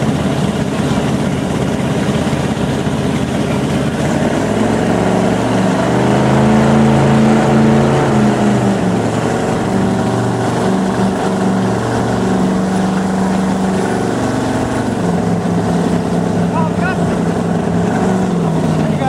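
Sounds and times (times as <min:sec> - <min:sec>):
motorboat engine running: 0:00.0 - 0:19.0
wind and water rushing: 0:00.0 - 0:19.0.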